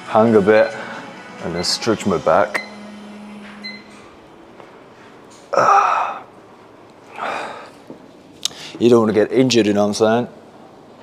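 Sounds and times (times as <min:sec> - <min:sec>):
man groaning with strain: 0:05.5 - 0:06.3.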